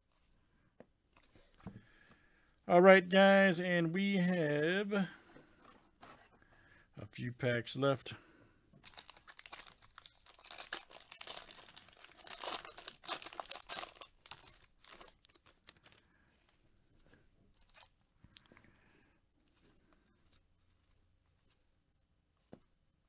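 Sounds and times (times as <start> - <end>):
foil wrapper tearing and crinkling: 8.8 - 16.0
cards rustling out of wrapper: 8.8 - 16.1, 17.6 - 18.0.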